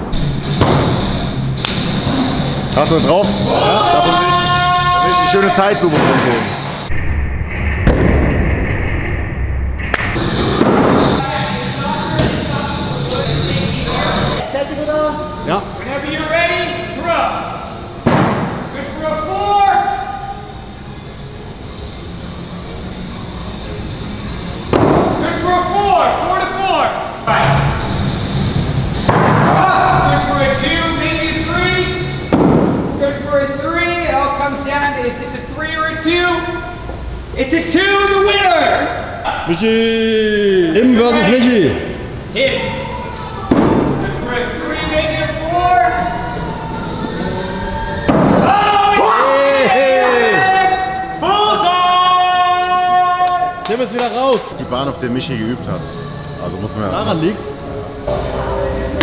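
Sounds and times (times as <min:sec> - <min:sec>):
background music with bass: 0:00.0 - 0:07.2, 0:19.6 - 0:34.1
background music with singing: 0:45.7 - 0:49.0, 0:54.3 - 0:59.0.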